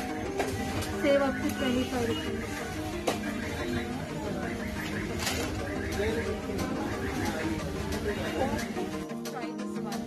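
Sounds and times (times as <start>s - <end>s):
indistinct voices talking: 0.8s - 10.0s.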